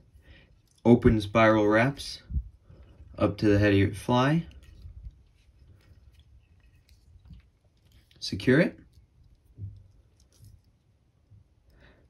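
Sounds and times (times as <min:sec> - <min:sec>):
small clicks and ticks of wire: 0:04.4 - 0:12.0.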